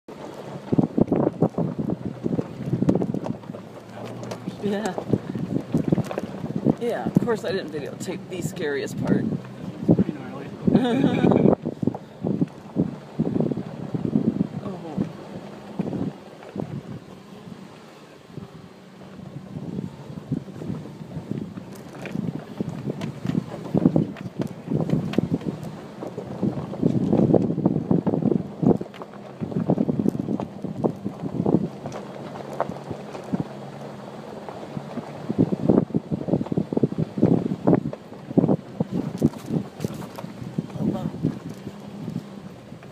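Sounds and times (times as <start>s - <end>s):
low engine hum: 0.0s - 42.9s
wind rumble on microphone: 0.1s - 42.9s.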